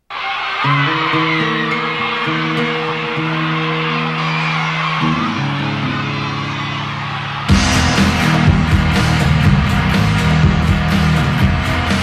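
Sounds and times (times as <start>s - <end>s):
audience screaming and cheering: 0.0s - 12.0s
sustained electric guitar chords: 0.6s - 12.0s.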